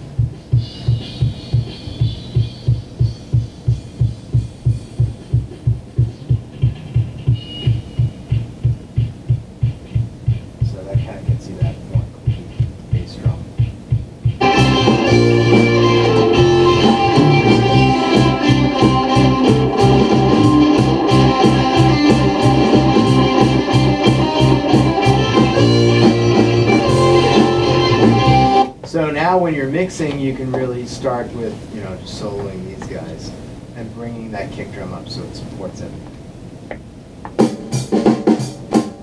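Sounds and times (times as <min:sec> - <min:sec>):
kick drum beating: 0:00.0 - 0:16.6
band playing with guitars: 0:14.4 - 0:28.7.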